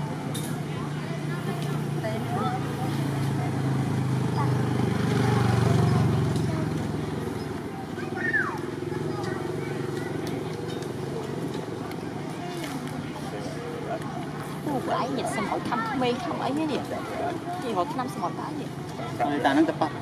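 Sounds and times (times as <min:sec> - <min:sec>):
faint voices: 0:00.0 - 0:20.0
motor engine running: 0:01.3 - 0:12.1.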